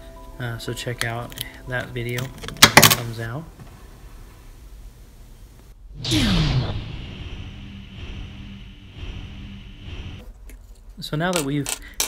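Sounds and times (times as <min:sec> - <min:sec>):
pulsing electronic hum: 0:05.8 - 0:10.2.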